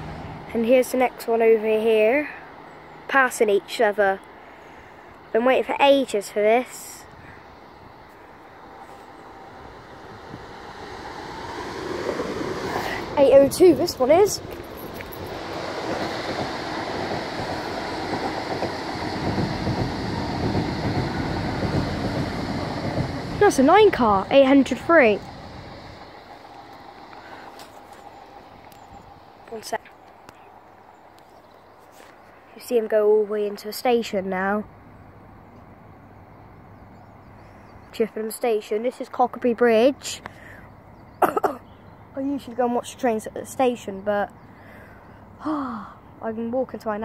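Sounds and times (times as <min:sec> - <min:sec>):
train approaching: 0:00.0 - 0:47.0
faint open-air background noise: 0:25.7 - 0:47.0.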